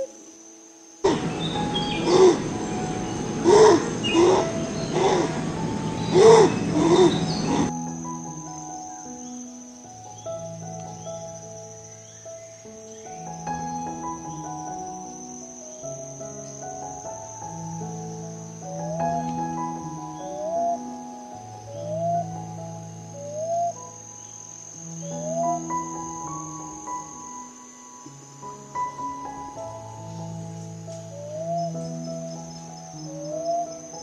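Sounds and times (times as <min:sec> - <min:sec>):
cuckoo calling: 0:00.0 - 0:27.8, 0:28.8 - 0:34.0
faint chirps: 0:00.0 - 0:34.0
soft calm music: 0:00.0 - 0:34.0.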